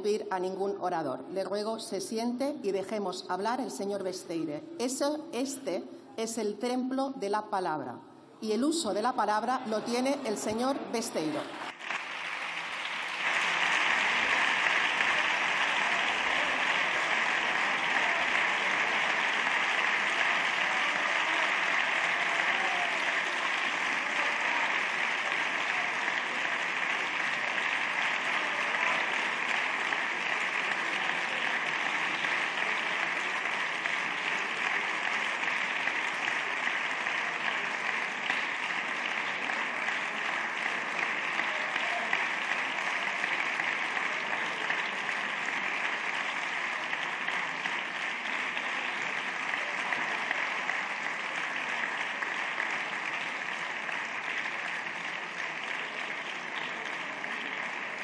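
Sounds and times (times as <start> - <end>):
large crowd applauding: 9.0 - 58.0.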